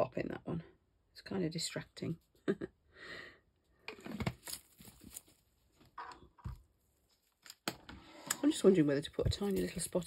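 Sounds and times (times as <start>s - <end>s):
pot handled in gloved hands: 3.8s - 10.0s.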